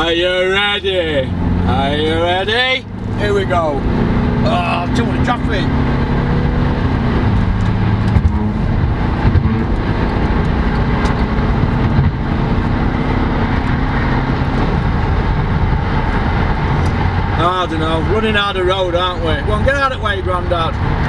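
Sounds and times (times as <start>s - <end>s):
car engine accelerating: 0.0s - 21.0s
road noise: 0.0s - 21.0s.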